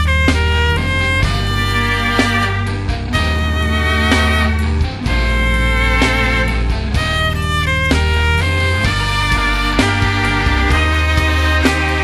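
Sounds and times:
electric violin bowed notes: 0.0s - 12.0s
heavy low backing: 0.0s - 12.0s
sharp hits: 0.3s - 12.0s.

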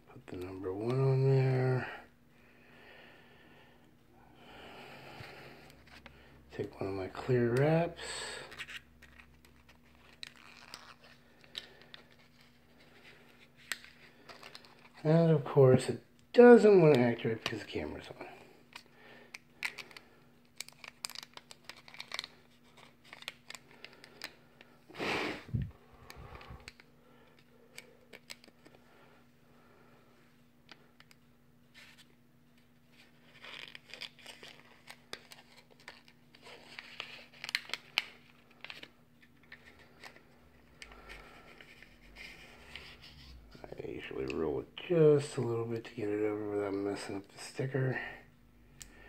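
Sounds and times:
plastic wrap crinkling: 8.6s - 15.0s, 19.4s - 24.4s, 32.9s - 43.2s.

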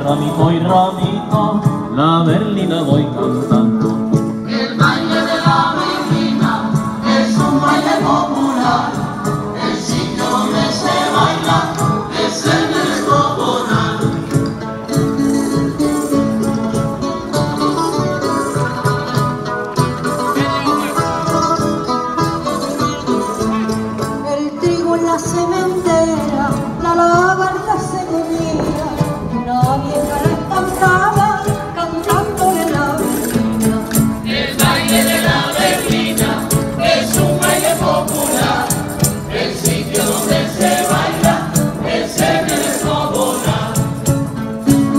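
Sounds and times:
guitars strummed and plucked: 0.0s - 44.9s
voices singing together: 4.3s - 14.6s, 33.0s - 44.9s.

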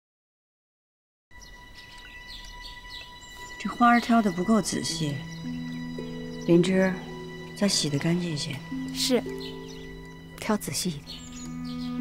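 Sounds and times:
birds chirping: 1.3s - 12.0s.

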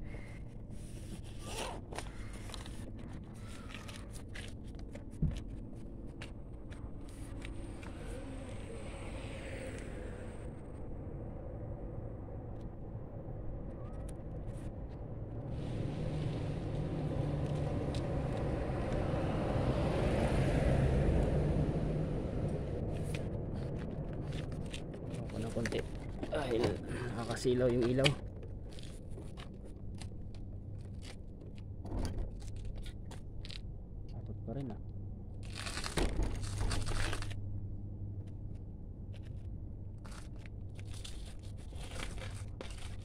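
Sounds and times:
steady low rumble: 0.0s - 43.0s
car passing by: 15.5s - 23.3s.

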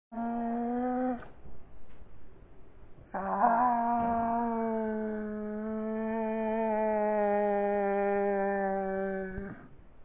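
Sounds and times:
slowed cat yowl: 3.1s - 9.8s.

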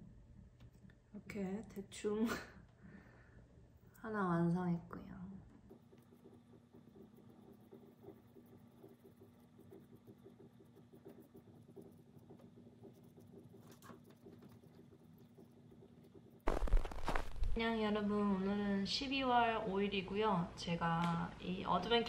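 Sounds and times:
foam brush dabbing paint: 5.4s - 17.6s.

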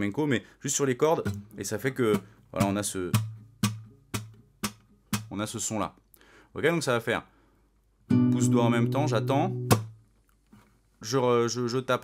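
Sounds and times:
percussive slaps on guitar strings: 1.2s - 5.4s, 9.5s - 10.0s
fingerstyle acoustic guitar: 1.3s - 5.3s, 8.1s - 10.0s.

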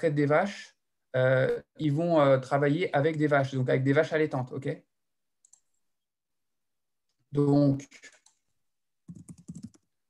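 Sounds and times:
computer mouse clicking: 5.4s - 5.8s, 9.1s - 9.8s.

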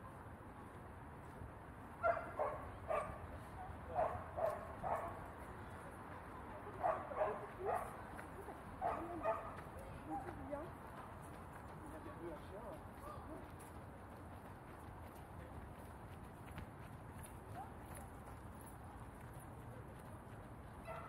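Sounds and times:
dog barking: 2.0s - 3.2s, 3.9s - 5.2s, 6.8s - 8.0s, 8.8s - 10.4s.

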